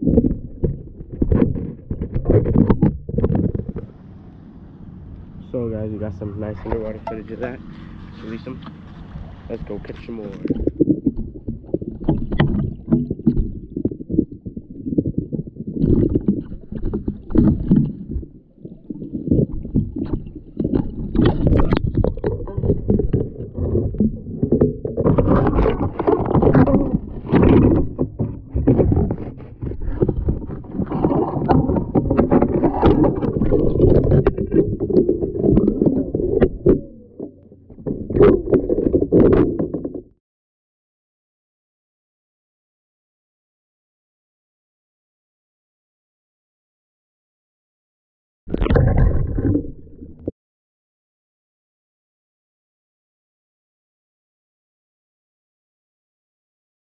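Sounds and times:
muffled water sloshing underwater: 0.0s - 40.2s, 48.5s - 50.3s.

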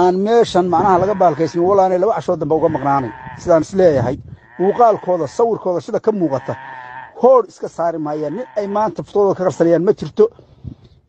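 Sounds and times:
man talking: 0.0s - 6.6s, 7.2s - 10.4s.

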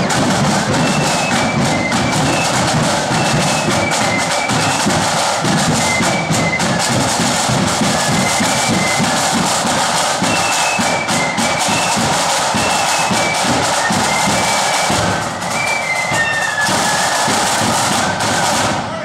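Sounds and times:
high flute melody: 0.0s - 19.0s
snare and bass drum beating: 0.0s - 19.0s.

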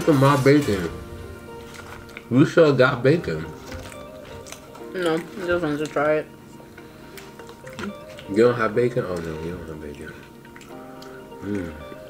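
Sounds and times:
wet eating sounds: 0.0s - 2.6s, 3.2s - 12.0s
quiet background music: 0.0s - 12.0s.

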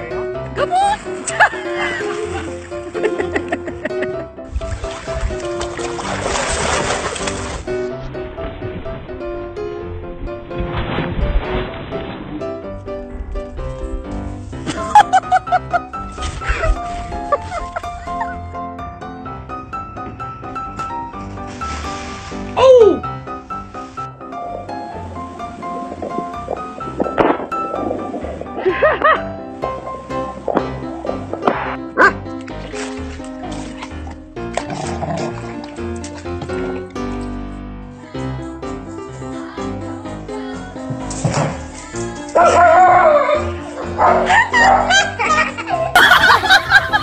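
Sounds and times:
background music with held notes: 0.0s - 47.0s
dog barking: 32.0s - 32.2s, 42.4s - 43.4s, 44.0s - 45.2s.

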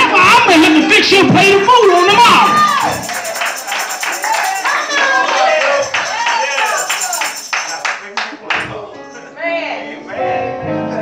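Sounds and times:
quick steady beat: 1.9s - 5.2s, 5.8s - 8.0s.

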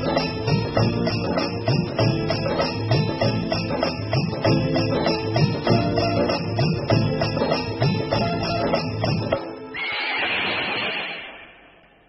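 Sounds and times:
percussive music: 0.0s - 9.6s
horse whinny: 9.7s - 11.7s.

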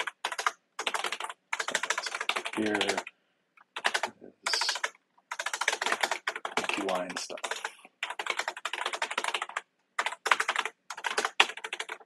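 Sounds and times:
fast typing on keyboard: 0.0s - 3.1s, 3.7s - 12.0s.

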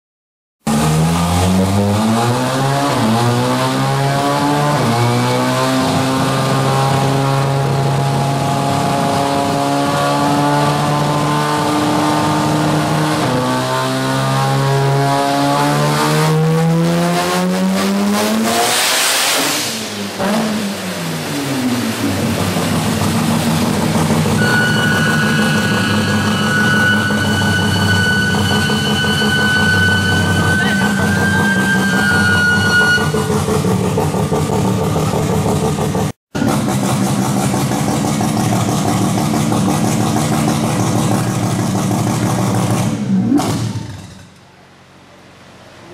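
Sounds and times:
loud car engine revving: 0.6s - 44.4s
high whine: 20.8s - 33.8s.

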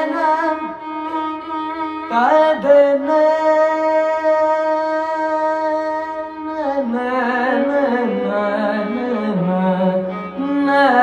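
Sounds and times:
person singing: 0.0s - 11.0s
violin melody: 0.0s - 11.0s.

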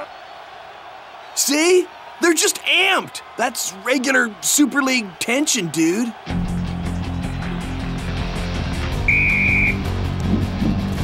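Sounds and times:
background music with low notes: 6.2s - 11.0s
referee's whistle blast: 9.0s - 9.9s.

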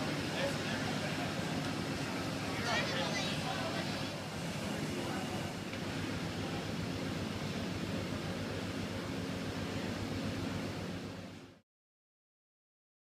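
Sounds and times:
diesel locomotive idling: 0.0s - 11.6s.

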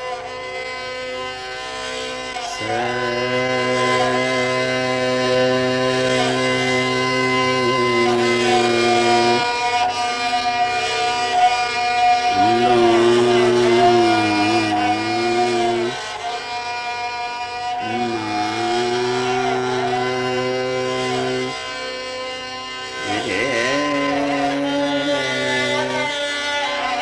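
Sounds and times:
classical melody with long bending notes: 0.0s - 27.0s
steady drone: 0.0s - 27.0s.

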